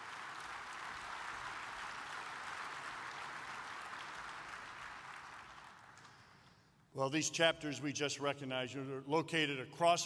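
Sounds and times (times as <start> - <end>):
large audience applauding: 0.0 - 6.4.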